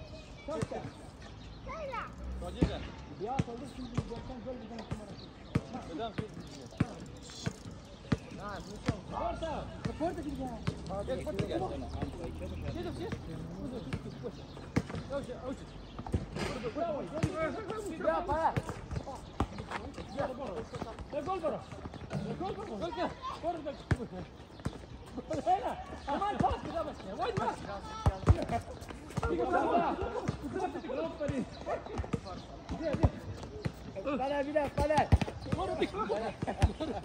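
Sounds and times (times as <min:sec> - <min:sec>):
voices: 0:00.1 - 0:37.0
ball kicked and bouncing: 0:26.4 - 0:29.4, 0:34.6 - 0:37.0.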